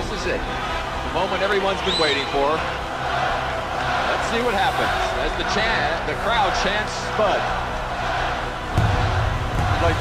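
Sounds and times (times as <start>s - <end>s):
crowd chanting and cheering: 0.0s - 10.0s
low bass music: 0.0s - 10.0s.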